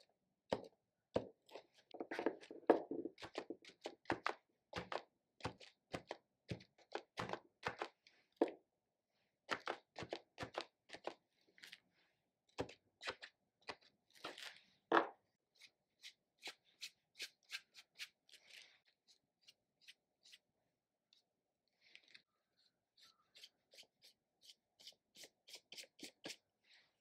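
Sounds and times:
paintbrush scratching on paper: 23.0 - 26.4.

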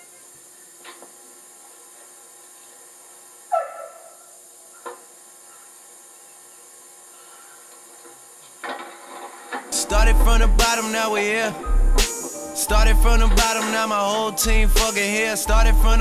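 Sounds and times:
video tape hiss: 0.0 - 16.0
music: 9.8 - 16.0.

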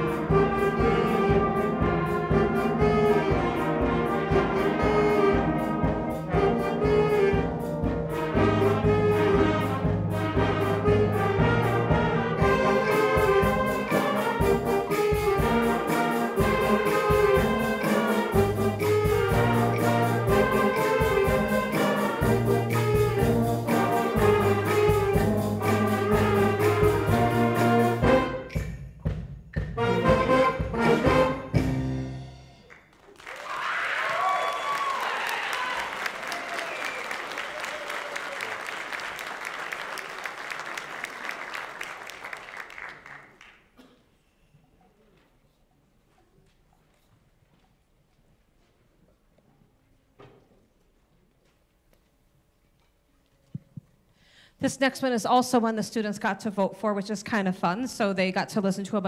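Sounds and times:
jazz big band playing: 0.0 - 33.0
audience applause with whoops: 33.0 - 43.5.

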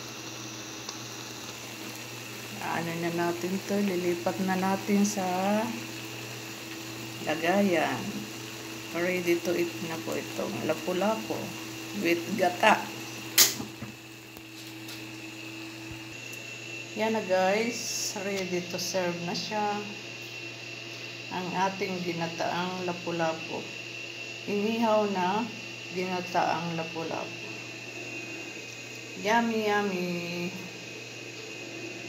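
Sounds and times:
broth bubbling in a wok: 0.0 - 17.0, 25.1 - 32.0
steady background hum: 0.0 - 32.0.

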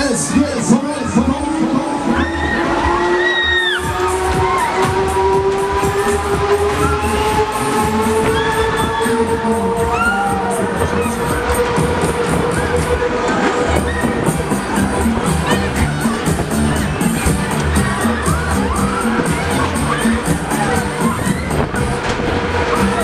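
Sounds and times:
loud dance music: 0.0 - 23.0
riders screaming: 2.0 - 11.6.

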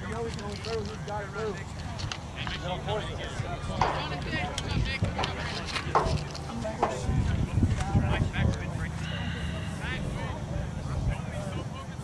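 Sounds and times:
distant shouts and voices: 0.0 - 12.0
wind rumble on microphone: 3.2 - 8.9
sharp knocks: 3.8 - 4.5, 5.2 - 7.4.

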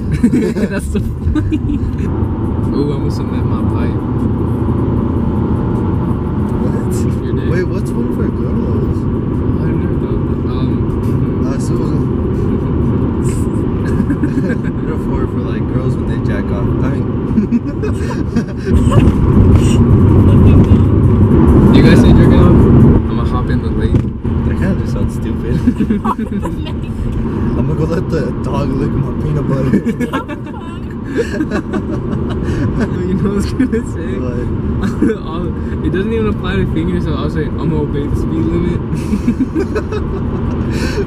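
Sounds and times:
music in car: 0.0 - 15.4, 16.2 - 27.8, 29.1 - 36.0, 38.8 - 41.0
car road and engine rumble: 0.0 - 41.0
voices: 6.5 - 21.0, 21.7 - 41.0.

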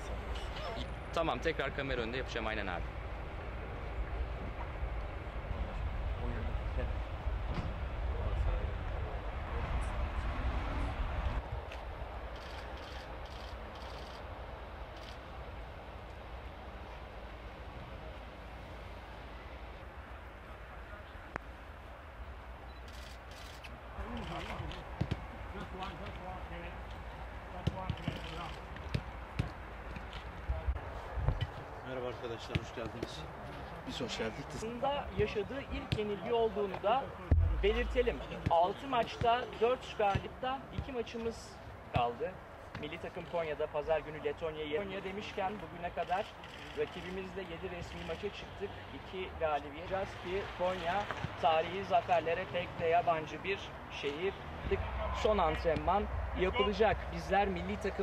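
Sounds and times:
footballs being kicked: 25.0 - 25.3
low rumble: 37.3 - 38.3.

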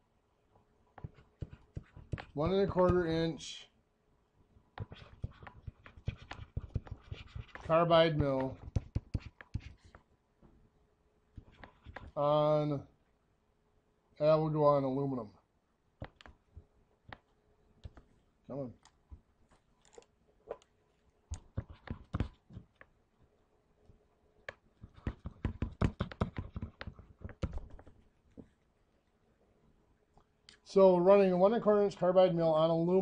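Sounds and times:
stylus tapping on a screen: 8.2 - 10.0, 16.0 - 16.4, 24.4 - 27.9.

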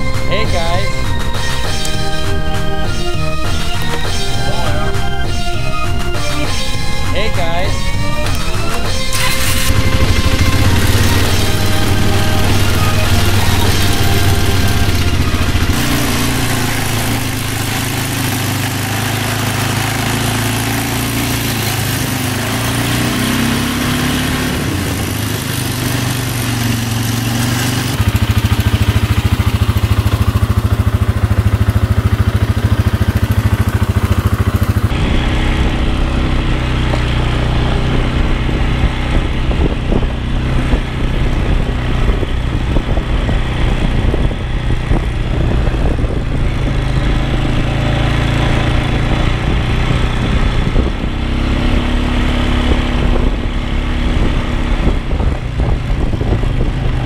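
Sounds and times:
quad engine running: 0.0 - 57.0.

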